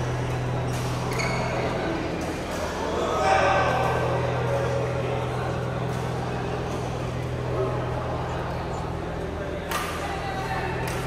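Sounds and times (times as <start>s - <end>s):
distant chatter: 0.0s - 11.0s
steady low hum: 0.0s - 11.0s.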